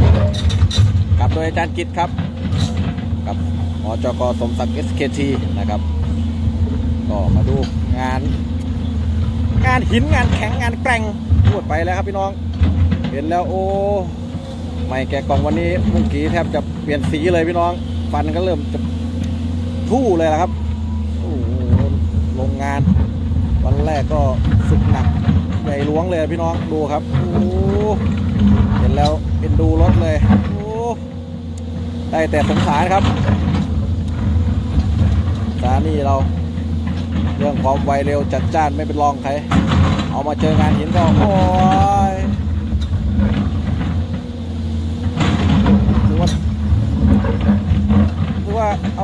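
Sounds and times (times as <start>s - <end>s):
excavator diesel engine running: 0.0s - 49.0s
excavator digging into rock: 0.0s - 49.0s.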